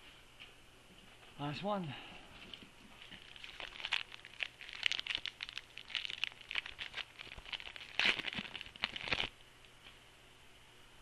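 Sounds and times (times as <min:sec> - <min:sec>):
plastic wrapper crinkling and tearing: 0:02.9 - 0:09.4.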